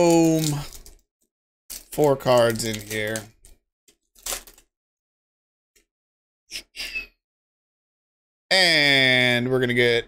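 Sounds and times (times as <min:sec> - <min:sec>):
foil wrapper crinkling: 0:00.0 - 0:01.1, 0:01.7 - 0:04.7.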